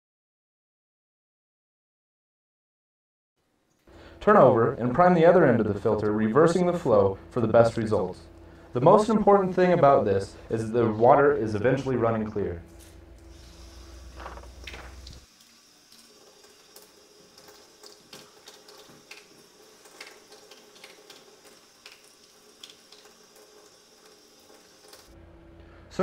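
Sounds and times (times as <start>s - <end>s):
low hum: 3.9s - 15.2s, 25.2s - 26.0s
faint hiss of tap water: 13.2s - 25.2s.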